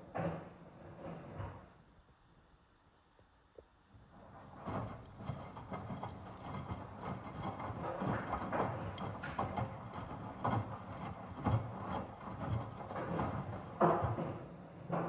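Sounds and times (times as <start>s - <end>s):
washing machine sloshing thumps: 4.7s - 15.0s.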